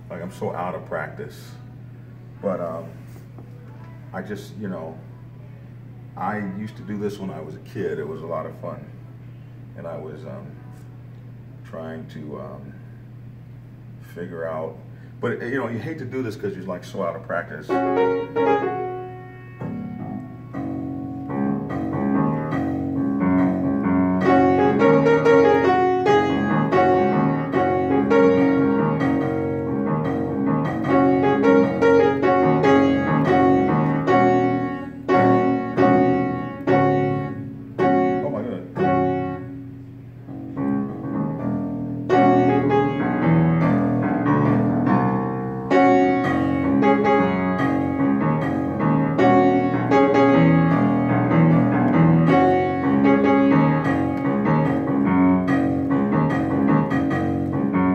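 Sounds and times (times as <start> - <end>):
upright piano playing chords: 0.0 - 10.8, 14.3 - 57.9.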